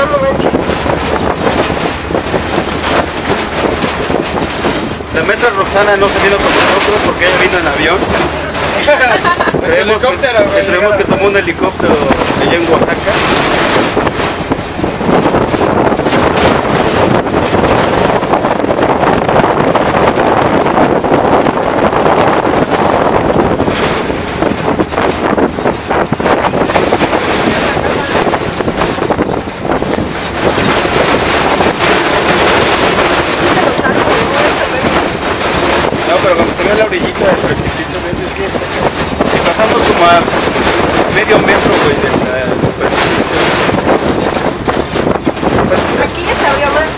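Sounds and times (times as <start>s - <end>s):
truck rattling on dirt road: 0.0s - 46.9s
wind buffeting microphone: 0.0s - 46.9s.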